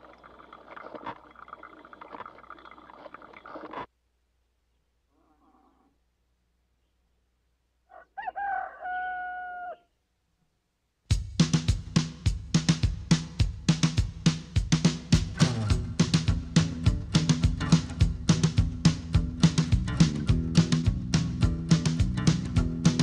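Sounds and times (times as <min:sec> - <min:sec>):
rooster crowing: 0:07.9 - 0:10.0
band music with driving drums: 0:11.1 - 0:23.0.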